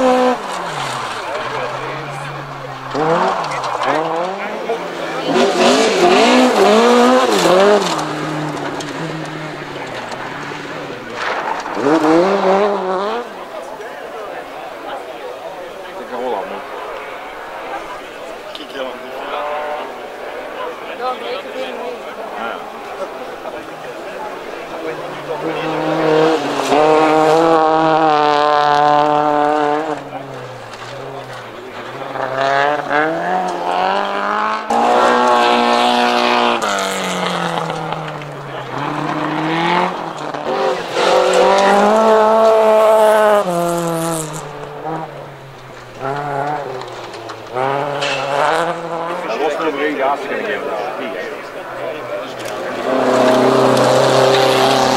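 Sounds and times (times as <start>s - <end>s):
rally car engines revving: 0.0s - 54.9s.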